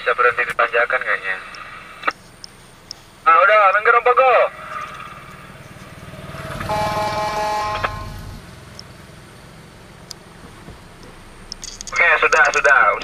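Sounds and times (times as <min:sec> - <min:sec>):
car engine droning: 0:04.2 - 0:13.0
motorcycle passing: 0:04.5 - 0:11.5.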